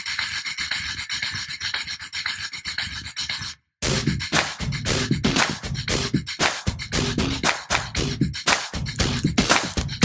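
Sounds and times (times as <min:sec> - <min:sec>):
loud music with a beat: 0:03.8 - 0:10.0
scratchy crackling noise: 0:08.9 - 0:10.0.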